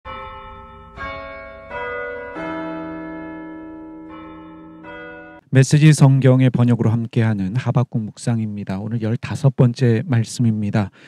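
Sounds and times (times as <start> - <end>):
bell chime: 0.1 - 5.5.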